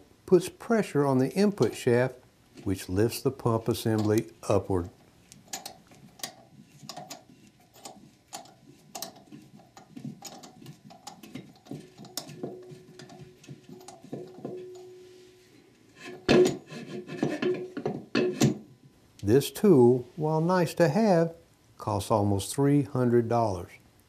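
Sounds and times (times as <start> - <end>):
metallic clicks and scraping: 5.2 - 14.9
metal tool clatter: 5.5 - 15.1, 16.0 - 18.6.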